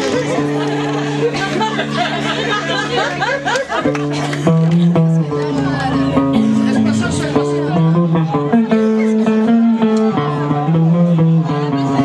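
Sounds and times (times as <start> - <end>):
guitar plucking notes: 0.0 - 12.0
held bass guitar notes: 0.0 - 12.0.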